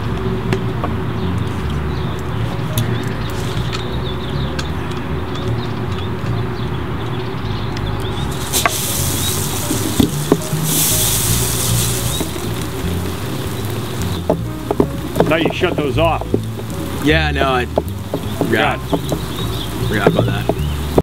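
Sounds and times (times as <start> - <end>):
background music: 0.0 - 21.0
sprinklers hissing spray: 8.0 - 21.0.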